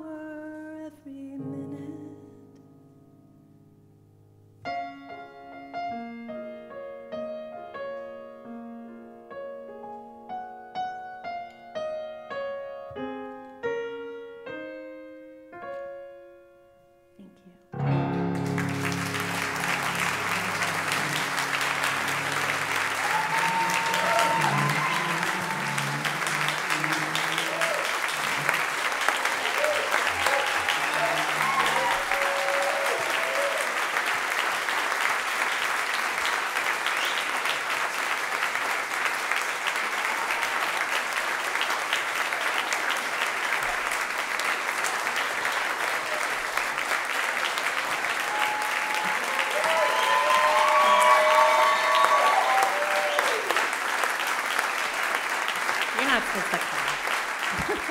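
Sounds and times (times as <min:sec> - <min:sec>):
audience applauding: 0:17.8 - 0:57.9
audience cheering and whooping: 0:18.4 - 0:35.0, 0:39.7 - 0:41.2, 0:47.4 - 0:55.3, 0:55.9 - 0:57.9.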